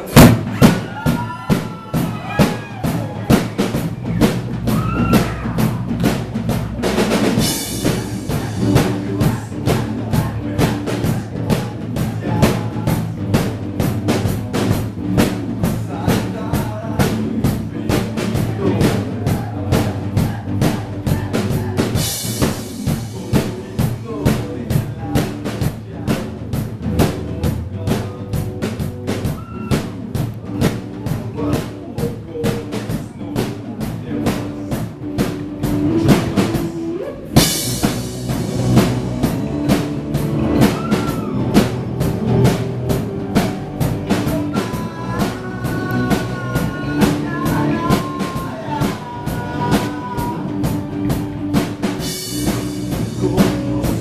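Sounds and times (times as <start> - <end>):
live rock band playing: 0.0 - 54.0.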